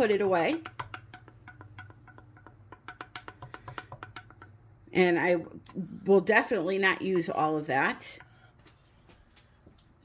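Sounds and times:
stir stick clicking in plastic cup: 0.5 - 4.7.

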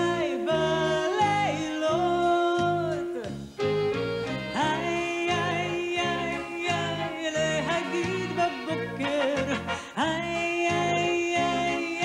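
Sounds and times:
woman singing: 0.0 - 3.3, 4.5 - 12.0
band accompaniment with bass: 0.0 - 12.0.

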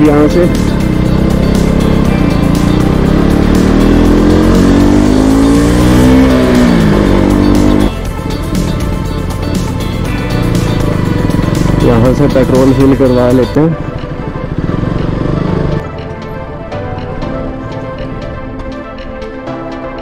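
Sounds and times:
motorcycle engine accelerating: 0.0 - 18.8.

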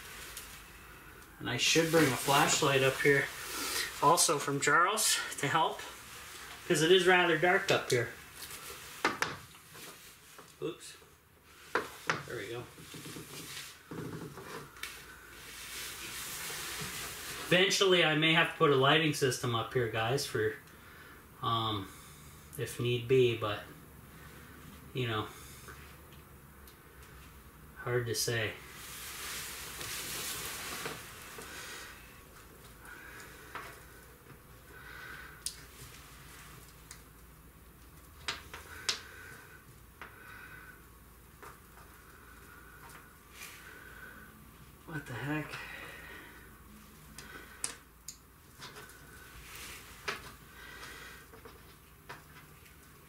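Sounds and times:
padded jacket rustling: 0.0 - 10.5, 14.6 - 17.7, 28.6 - 32.2
clothing rustling: 0.0 - 10.8, 11.4 - 18.0, 28.3 - 53.0
steady hiss: 0.0 - 53.0
small clicks handling wires: 35.4 - 35.7, 47.2 - 49.0.

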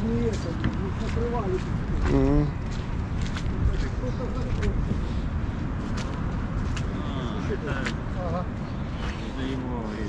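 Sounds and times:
people talking in background: 0.0 - 5.6
steady low rumble: 0.0 - 10.0.

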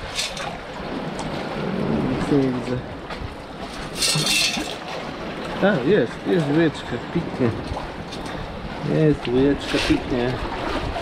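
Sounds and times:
water streaming through metal scoop: 0.0 - 0.6, 3.8 - 4.9
water splash: 3.6 - 6.6.

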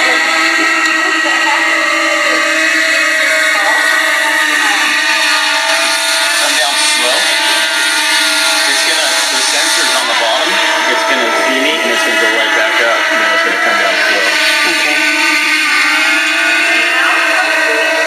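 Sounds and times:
drone propellers whining: 0.0 - 18.0.

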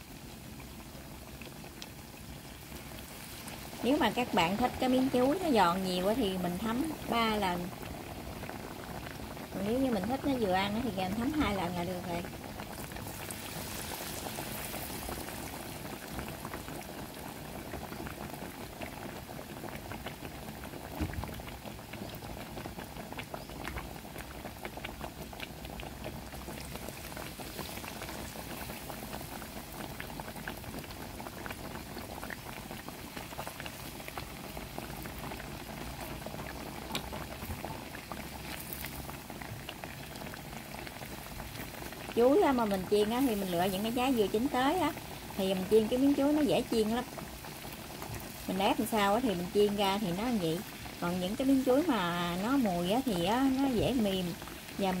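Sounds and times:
fritters deep-frying in oil: 0.0 - 55.0
oil crackles and pops: 0.0 - 55.0.

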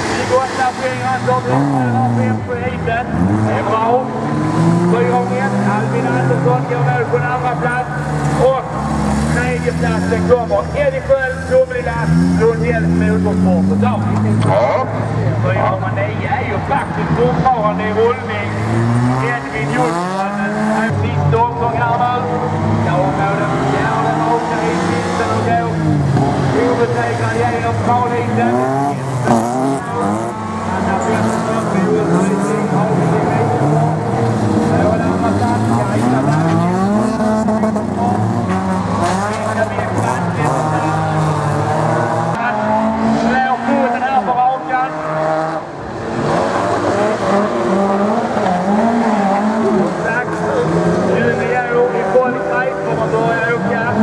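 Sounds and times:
race car engines revving: 0.0 - 54.0.

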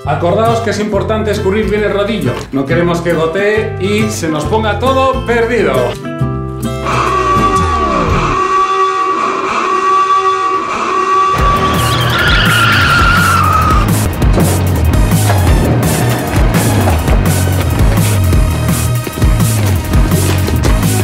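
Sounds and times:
tyres squealing in a skid: 6.8 - 19.2
dramatic music with heavy bass beat: 11.4 - 21.0.

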